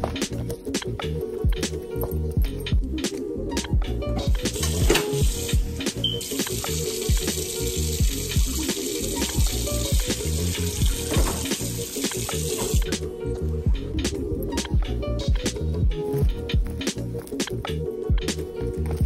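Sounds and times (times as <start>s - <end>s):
background music with steady beat: 0.0s - 19.0s
water running from a tap: 4.4s - 13.0s.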